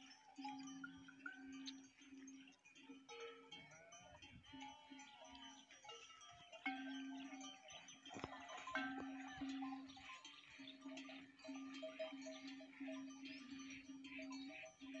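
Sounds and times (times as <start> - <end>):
livestock bells clinking: 0.0 - 15.0
goats and sheep bleating: 0.9 - 15.0.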